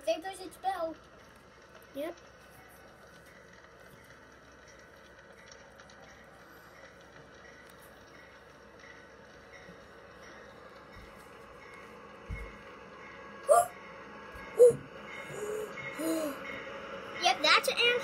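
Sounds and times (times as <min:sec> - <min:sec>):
train approaching: 0:00.0 - 0:18.0.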